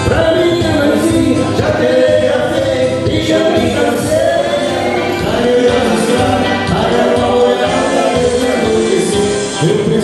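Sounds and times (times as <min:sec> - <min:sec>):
electric guitar: 0:00.0 - 0:10.0
electronic keyboard: 0:00.0 - 0:10.0
man singing into a microphone: 0:00.0 - 0:10.0.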